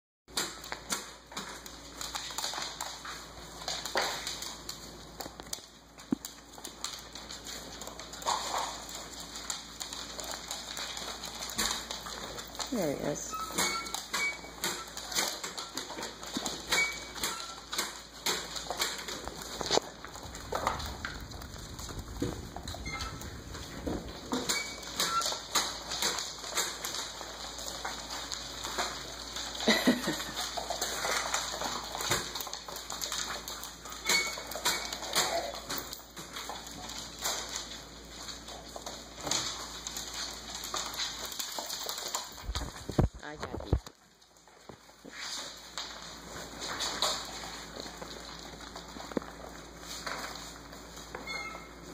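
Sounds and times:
puppy paws scuffling: 0.3s - 51.9s
newspaper crinkling: 17.5s - 51.2s.

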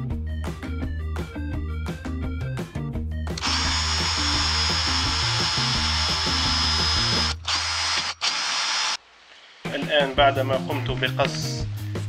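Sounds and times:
power tool cutting plastic: 3.4s - 9.0s.

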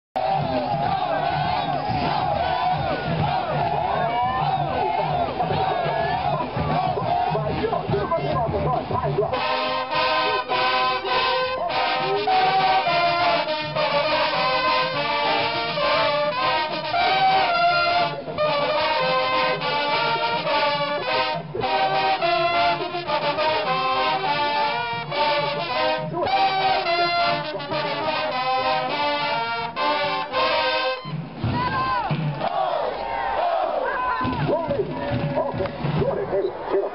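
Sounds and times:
marching band brass playing: 0.2s - 36.4s
crowd shouting: 0.2s - 36.9s.

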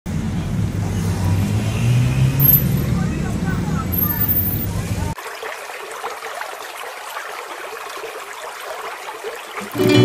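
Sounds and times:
low rumble of road traffic: 0.1s - 5.4s.

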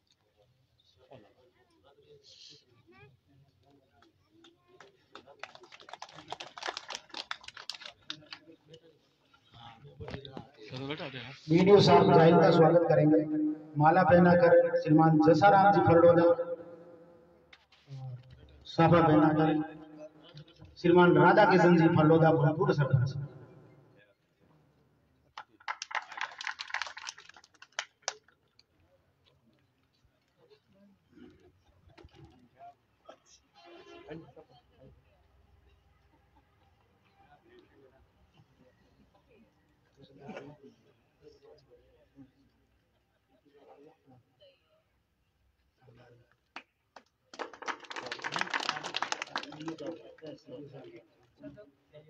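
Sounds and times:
audience clapping: 4.4s - 8.4s, 25.4s - 28.3s, 47.0s - 50.3s.

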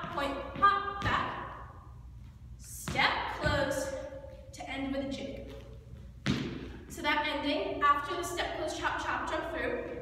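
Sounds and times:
dance shoes thudding on floor: 0.0s - 1.6s, 2.7s - 3.9s, 5.4s - 7.0s.

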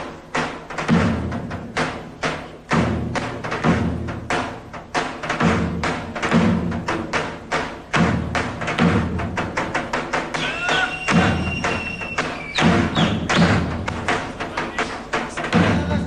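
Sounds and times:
deep booming drum strokes: 0.0s - 16.0s.

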